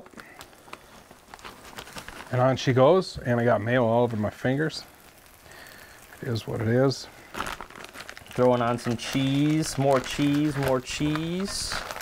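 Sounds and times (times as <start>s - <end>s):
butter and cheese sizzling: 0.0s - 12.0s
small crackles and ticks: 0.0s - 12.0s.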